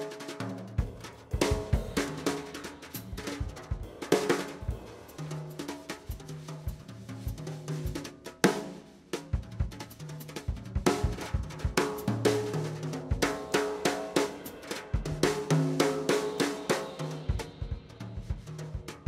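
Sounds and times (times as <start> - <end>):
jazz drumming with sticks: 0.0 - 19.0.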